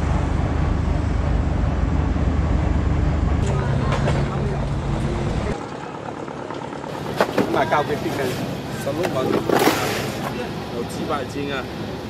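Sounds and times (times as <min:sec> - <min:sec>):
men talking: 0:07.4 - 0:11.8.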